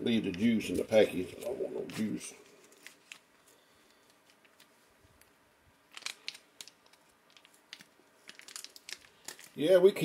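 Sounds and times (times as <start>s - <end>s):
food pouch crinkling: 0.3s - 9.8s.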